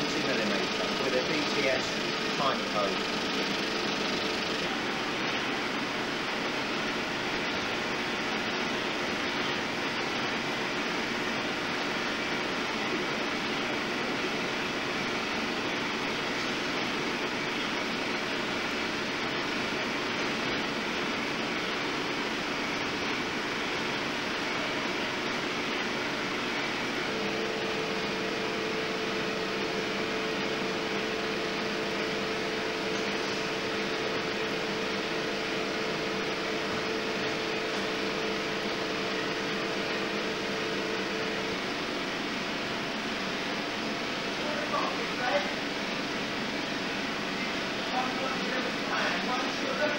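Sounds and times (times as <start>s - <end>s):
fan noise: 0.0s - 49.9s
film projector whirring: 0.0s - 49.9s
steady humming tone: 0.0s - 49.9s.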